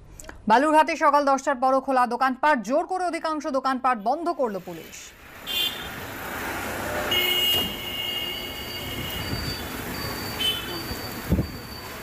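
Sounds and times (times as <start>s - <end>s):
street traffic noise: 4.0s - 12.0s
vehicle horns tooting: 5.4s - 6.2s, 6.8s - 12.0s.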